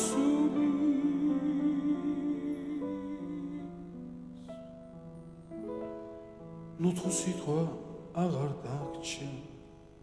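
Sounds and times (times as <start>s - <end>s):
man singing slow song: 0.0s - 4.2s, 6.8s - 9.6s.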